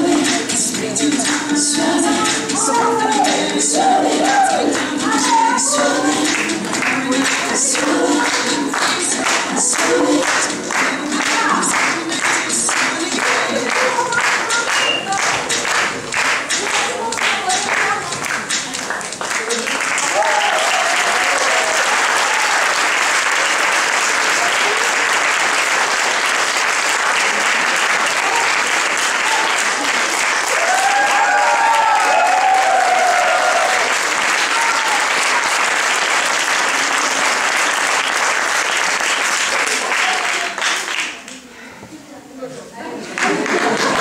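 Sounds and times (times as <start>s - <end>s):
audience applauding: 4.2s - 41.4s, 43.2s - 44.0s.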